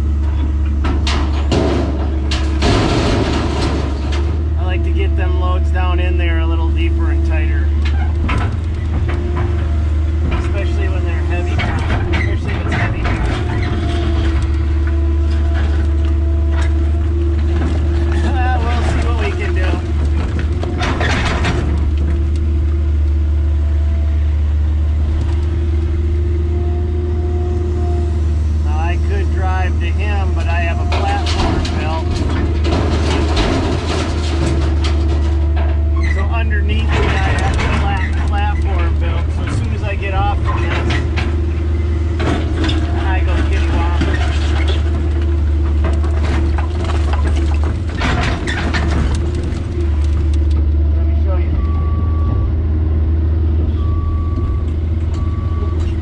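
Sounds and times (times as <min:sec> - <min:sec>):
diesel engine droning: 0:00.0 - 0:56.0
bucket clanking in concrete rubble: 0:00.1 - 0:05.8, 0:07.4 - 0:22.6, 0:29.6 - 0:50.4.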